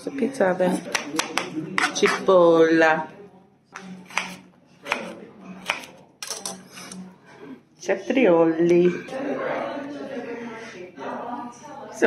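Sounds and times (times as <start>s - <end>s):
knife slicing on cutting board: 4.1s - 5.9s.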